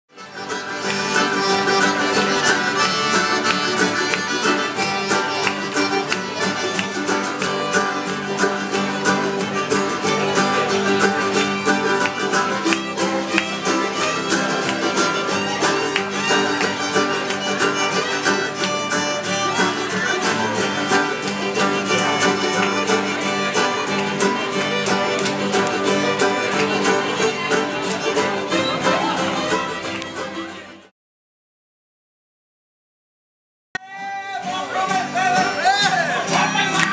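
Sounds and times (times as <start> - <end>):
accordion: 0.1 - 30.9
acoustic guitars: 0.1 - 30.9, 33.8 - 36.9
fiddle: 0.1 - 30.9
mandolin: 0.1 - 30.9, 33.8 - 36.9.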